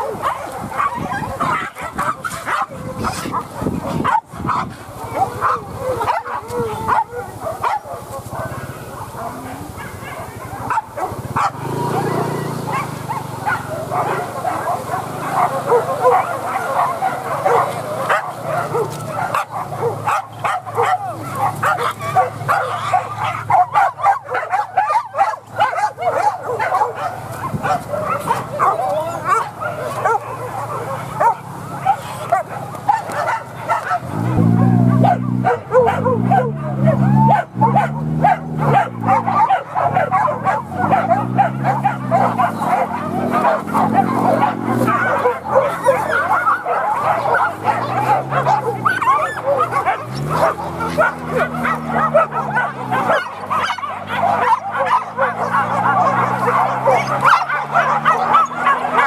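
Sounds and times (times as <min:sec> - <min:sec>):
dogs yipping and whining: 0:00.0 - 0:59.0
low drawn-out calls: 0:00.0 - 0:59.0.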